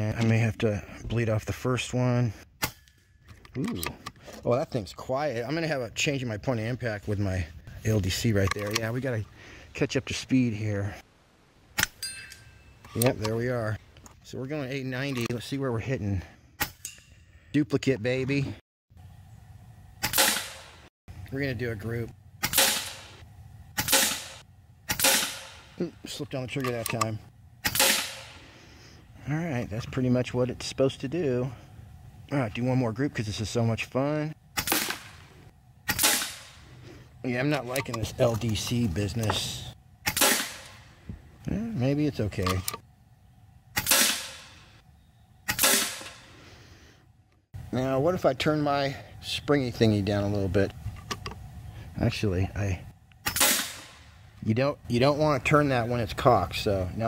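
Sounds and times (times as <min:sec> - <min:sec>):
air rifle shot: 0:20.0 - 0:20.8, 0:22.4 - 0:23.2, 0:23.8 - 0:25.8, 0:27.6 - 0:28.4, 0:34.6 - 0:35.3, 0:35.9 - 0:36.7, 0:40.0 - 0:40.9, 0:43.8 - 0:44.7, 0:45.5 - 0:46.3, 0:53.2 - 0:54.1.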